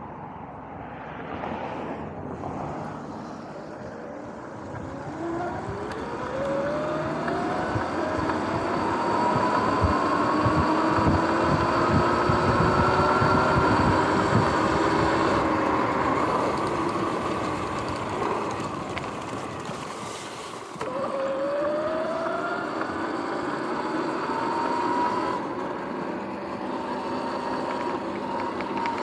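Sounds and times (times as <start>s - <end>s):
electric motor whine: 3.3s - 29.0s
wind noise on microphone: 4.9s - 18.1s.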